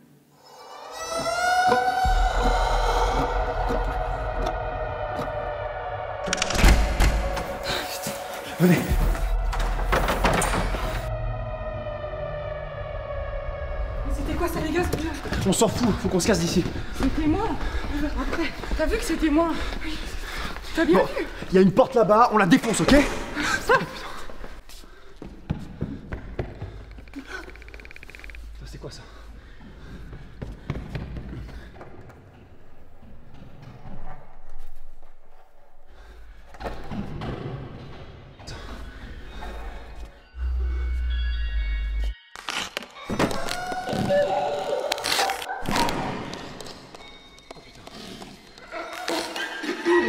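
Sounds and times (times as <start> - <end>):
tense music: 0.3 - 42.6.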